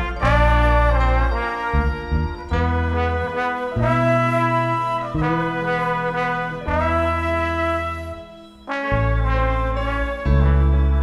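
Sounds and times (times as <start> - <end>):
live band with horn section: 0.0 - 11.0.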